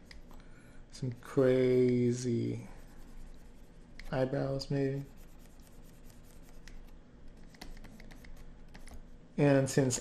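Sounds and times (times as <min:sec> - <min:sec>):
stylus scratching on screen: 0:01.0 - 0:09.2.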